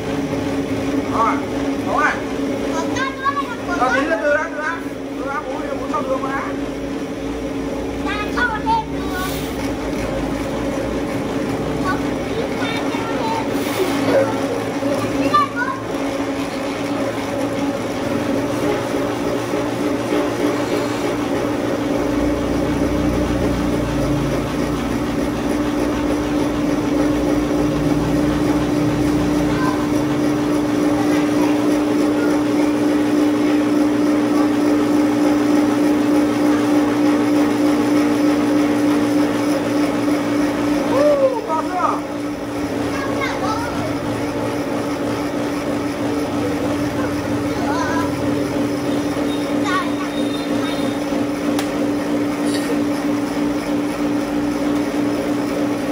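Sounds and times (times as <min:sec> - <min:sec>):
cotton candy machine motor hum: 0:00.0 - 0:55.9.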